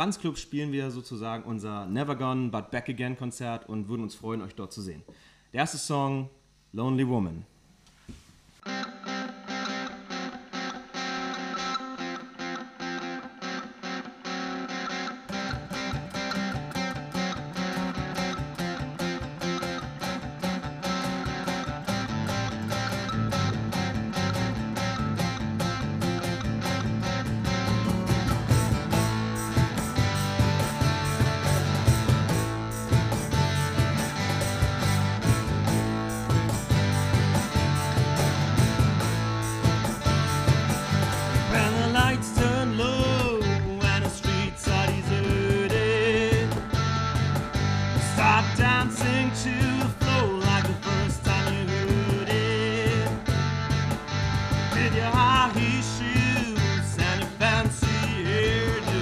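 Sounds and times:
acoustic guitar: 8.1s - 59.0s
bass guitar: 8.8s - 59.0s
cajon beat: 15.3s - 59.0s.

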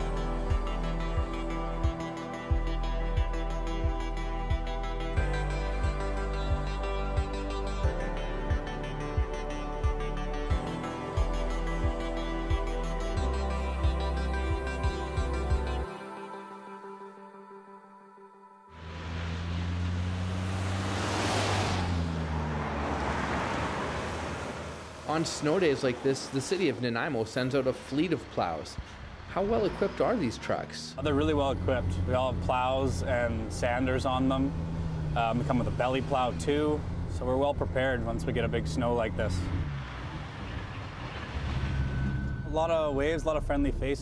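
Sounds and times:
road noise: 18.7s - 44.0s
snowplow scraping snow: 18.8s - 42.4s
truck engine running: 31.0s - 44.0s.

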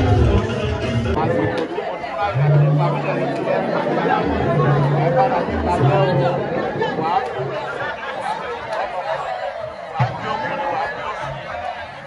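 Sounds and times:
background music with bass: 0.0s - 1.6s, 2.2s - 7.9s
people talking at once: 0.0s - 12.0s.

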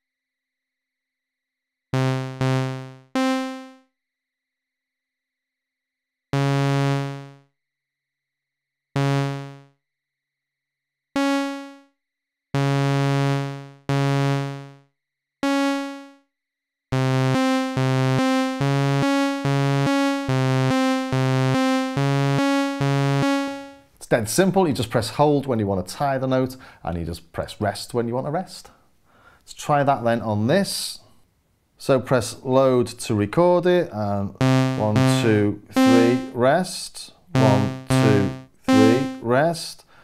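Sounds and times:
looping synthesizer sequence: 2.0s - 3.8s, 6.4s - 7.4s, 9.0s - 9.7s, 11.2s - 11.9s, 12.6s - 14.8s, 15.4s - 16.2s, 16.9s - 23.8s, 34.4s - 36.4s, 37.3s - 39.3s
synthesizer single bright notes: 2.0s - 3.9s, 6.4s - 7.5s, 9.0s - 9.8s, 11.2s - 11.9s, 12.6s - 14.8s, 15.4s - 16.2s, 16.9s - 23.8s, 34.4s - 36.4s, 37.3s - 39.4s.

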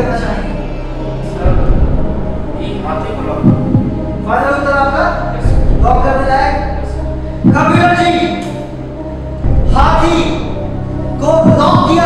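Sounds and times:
held synth chord: 0.0s - 12.0s
low heartbeat-like throb: 1.4s - 4.2s, 5.4s - 6.3s, 7.0s - 8.0s, 9.4s - 12.0s.

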